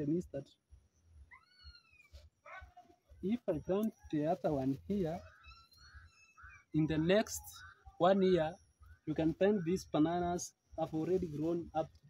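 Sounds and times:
faint animal whine: 1.2 - 8.0.

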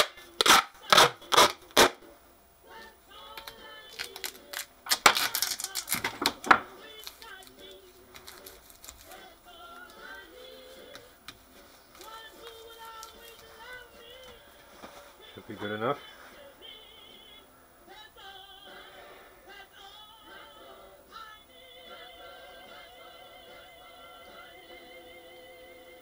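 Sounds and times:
tape ripping off a roll: 0.0 - 2.0, 3.4 - 9.3
quiet music with singing: 0.0 - 26.0.

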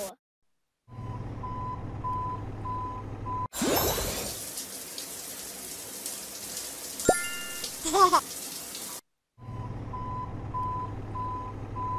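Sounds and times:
toy truck backing-up beeps: 0.9 - 3.5, 9.4 - 11.9
water splash with whoosh: 3.5 - 4.5.

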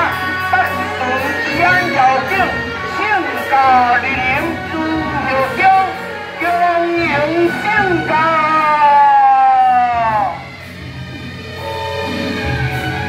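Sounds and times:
procession music: 0.0 - 13.0.

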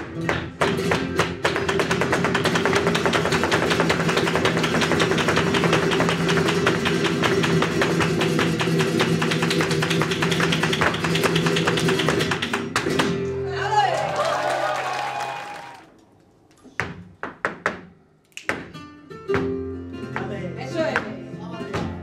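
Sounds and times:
shoes striking wooden stage: 0.0 - 13.3, 16.5 - 22.0
acoustic flamenco guitars: 0.0 - 13.9, 18.6 - 22.0.

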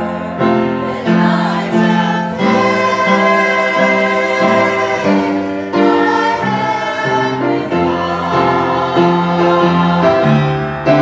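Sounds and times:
choir singing sustained notes: 0.0 - 11.0.

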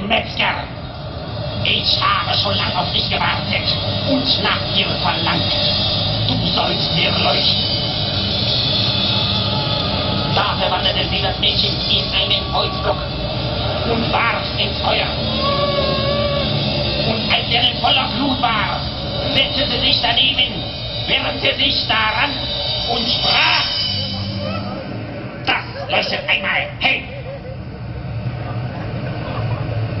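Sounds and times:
low bass drone: 0.0 - 30.0.

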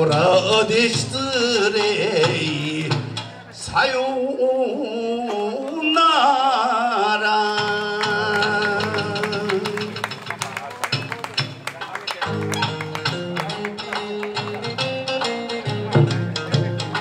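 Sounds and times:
band playing guitar bass and drums: 0.0 - 4.1, 7.2 - 17.0.

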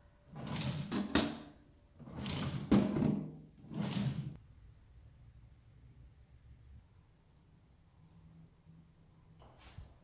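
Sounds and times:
drawer sliding and shutting: 0.3 - 4.4.

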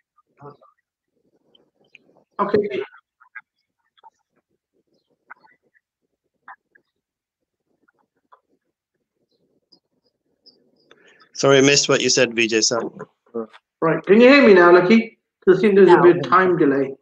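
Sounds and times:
faint chirps and clicks: 0.0 - 11.4.

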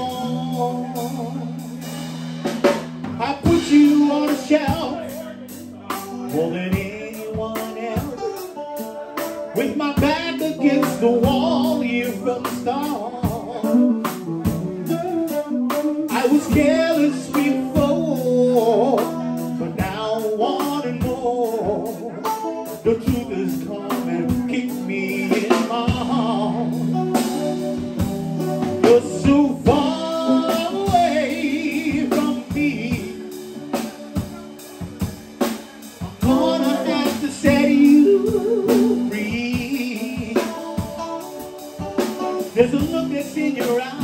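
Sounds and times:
drum kit: 0.0 - 44.0
electric guitar: 0.0 - 44.0
man singing: 0.0 - 44.0.

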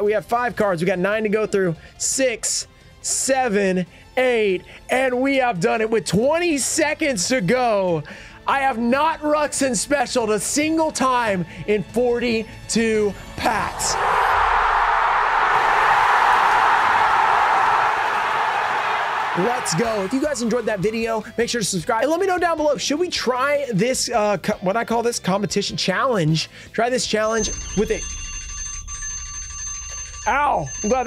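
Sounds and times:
crowd cheering: 13.4 - 21.1
timer alarm ringing: 27.0 - 31.0.

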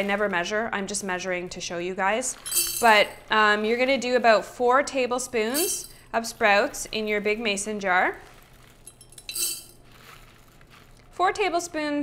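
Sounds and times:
beans rattling: 2.0 - 4.5, 5.3 - 11.4
dry beans clinking into spoon: 2.3 - 3.9, 5.4 - 7.1, 7.9 - 11.1.

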